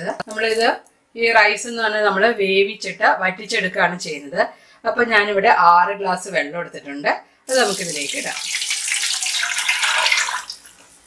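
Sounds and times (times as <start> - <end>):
water pouring into pot: 7.5 - 11.0.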